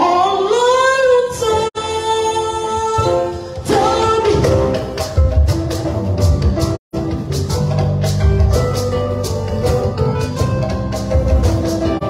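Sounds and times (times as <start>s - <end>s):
woman singing gospel song: 0.0s - 4.7s.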